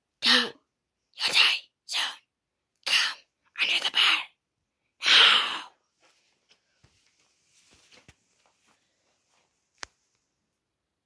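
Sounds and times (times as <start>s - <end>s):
person whispering: 0.2s - 0.6s, 1.2s - 4.4s, 5.0s - 5.8s.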